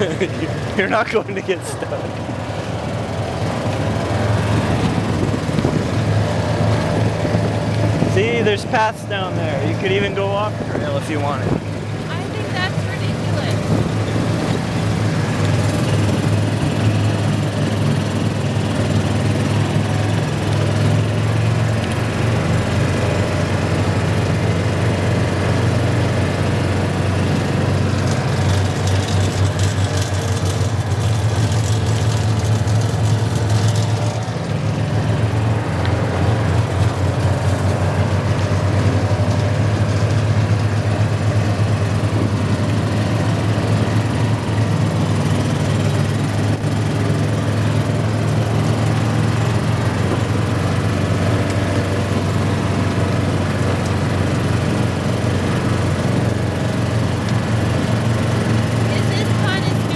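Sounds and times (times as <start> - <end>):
utility vehicle engine running: 0.0 - 59.9.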